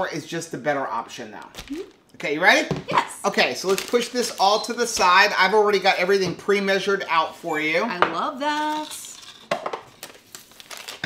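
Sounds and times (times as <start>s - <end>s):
plastic pouch crinkling: 1.4s - 2.0s, 3.6s - 4.7s, 8.6s - 11.0s.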